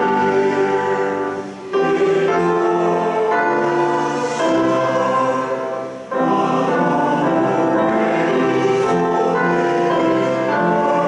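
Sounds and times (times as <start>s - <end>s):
congregation singing a hymn: 0.0s - 11.0s
organ chords: 0.0s - 11.0s.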